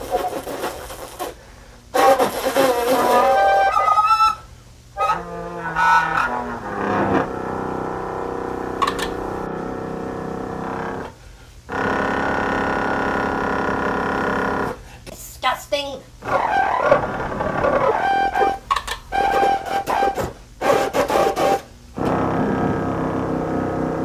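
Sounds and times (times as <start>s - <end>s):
tube horn honking: 2.0s - 4.4s, 5.0s - 7.4s.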